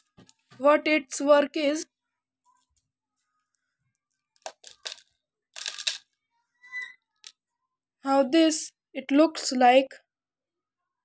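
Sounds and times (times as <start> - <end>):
beads rattling and rubbing: 4.0 - 6.0.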